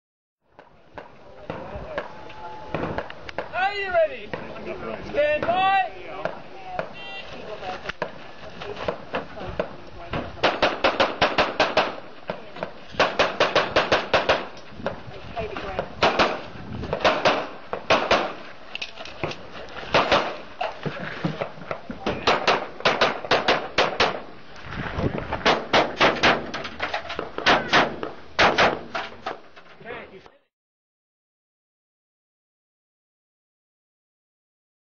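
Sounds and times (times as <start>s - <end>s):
handgun shots: 10.4s - 12.0s, 13.0s - 14.5s, 16.0s - 18.4s, 19.3s - 20.4s, 22.1s - 24.2s, 25.4s - 26.6s, 27.2s - 29.0s.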